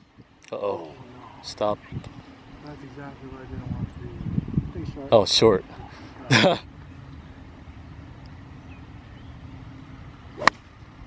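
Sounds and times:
low steady hum: 0.0 - 11.0
golf club striking ball: 10.4 - 10.7.

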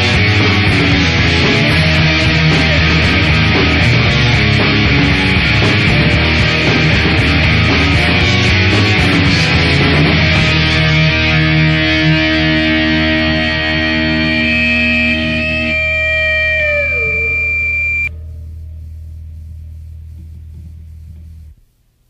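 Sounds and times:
distorted electric guitar chord: 0.0 - 19.9
low steady hum: 13.1 - 22.0.

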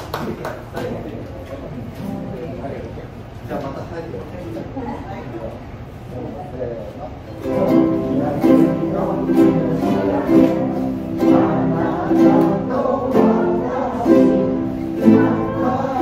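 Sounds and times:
ukulele and guitar strumming chords: 7.4 - 16.0.

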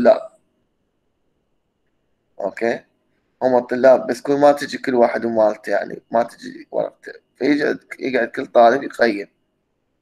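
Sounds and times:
man speaking: 0.0 - 0.4, 2.4 - 9.3.

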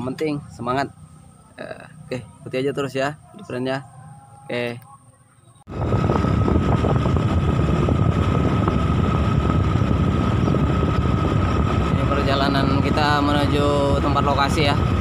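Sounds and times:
vehicle engine and tyre noise: 5.7 - 15.0
wind on microphone: 5.7 - 15.0.

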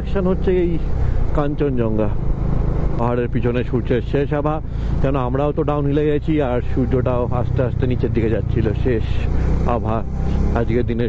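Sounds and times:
man talking: 0.0 - 2.2, 3.0 - 11.0
motorcycle engine droning: 0.0 - 11.0.

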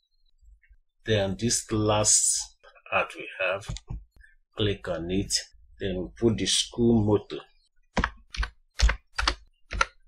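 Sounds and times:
computer keyboard typing: 8.0 - 10.0.

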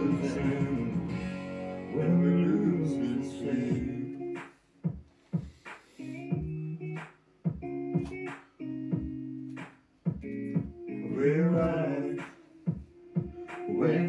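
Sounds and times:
guitar chords: 0.0 - 14.0
sharp guitar strokes: 5.5 - 6.3.

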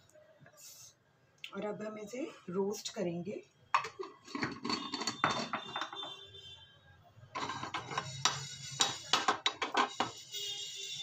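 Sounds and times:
spatula scraping spice seeds: 7.4 - 9.2.

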